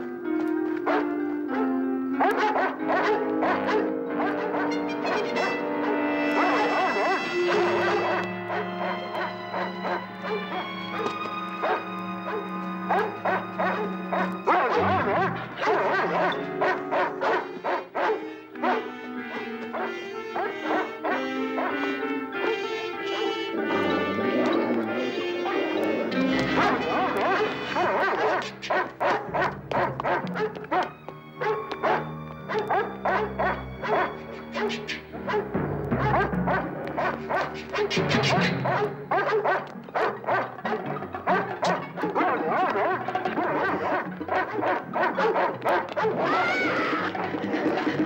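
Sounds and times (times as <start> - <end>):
dramatic orchestral score: 0.0 - 48.0
dogs barking rapidly: 0.8 - 48.0.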